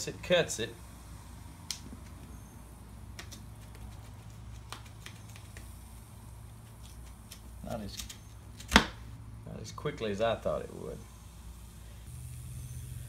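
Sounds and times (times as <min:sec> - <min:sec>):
low hum: 0:10.6 - 0:13.0.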